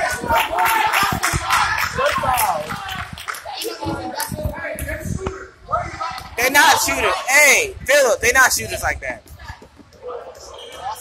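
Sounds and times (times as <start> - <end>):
indistinct voices in a gym: 0.0 - 11.0.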